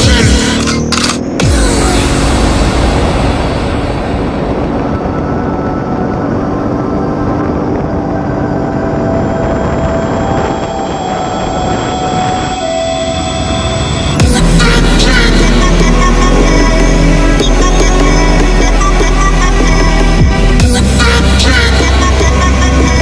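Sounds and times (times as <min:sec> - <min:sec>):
atv engine running: 0:00.0 - 0:10.6, 0:13.7 - 0:23.0
wind rumble on microphone: 0:01.4 - 0:23.0.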